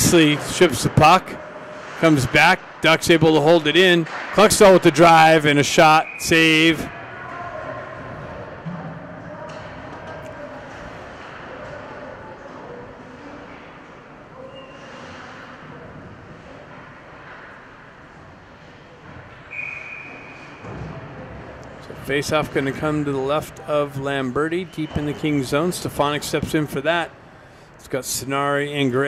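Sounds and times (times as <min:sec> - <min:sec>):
echoing murmur of distant voices: 0:00.0 - 0:26.1.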